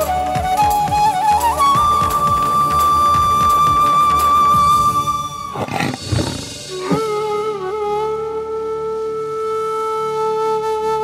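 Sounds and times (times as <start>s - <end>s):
held flute-like note: 0.0s - 11.0s.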